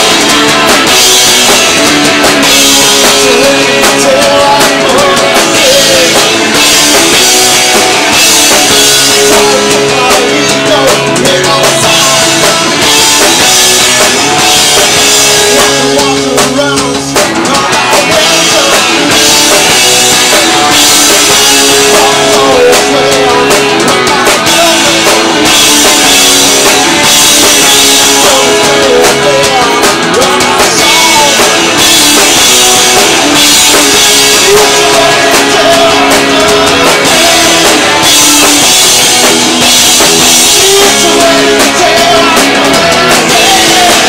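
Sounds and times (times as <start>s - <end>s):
rock band playing live: 0.0s - 44.0s.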